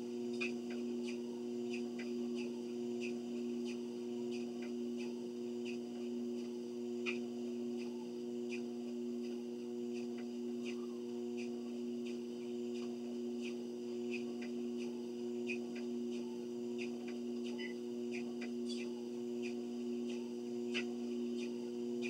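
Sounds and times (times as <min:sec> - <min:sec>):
treadmill belt ticks: 0:00.0 - 0:22.0
treadmill motor hum: 0:00.0 - 0:22.0.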